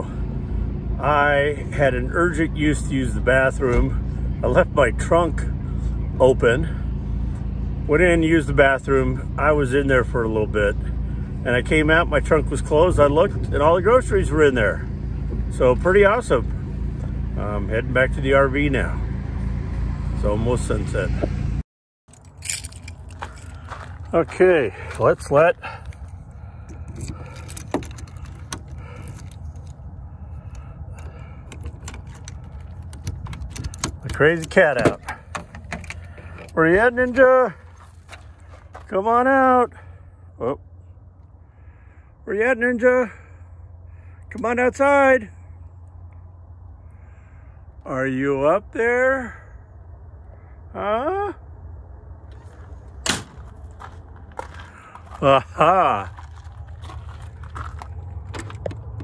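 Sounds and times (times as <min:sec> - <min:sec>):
low steady rumble: 0:00.0 - 0:59.0
keys jangling: 0:22.1 - 0:23.8, 0:26.7 - 0:29.8, 0:31.5 - 0:36.6
key clicking in lock: 0:31.5 - 0:36.0
sharp crunching knock: 0:53.0 - 0:54.8.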